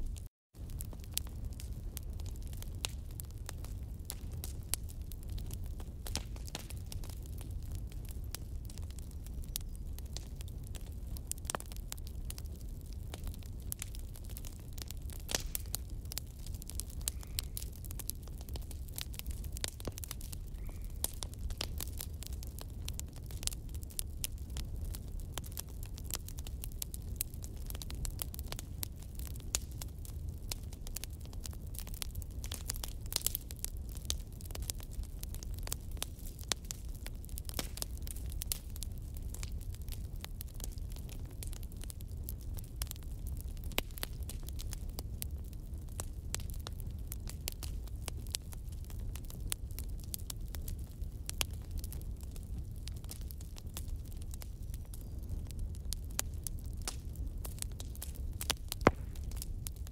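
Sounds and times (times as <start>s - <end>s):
low fire rumble: 0.0s - 59.9s
wood fire crackling: 0.0s - 59.9s.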